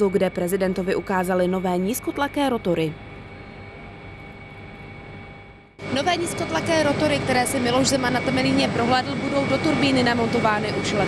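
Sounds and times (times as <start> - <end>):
machinery hum with steady tones: 0.0 - 11.0.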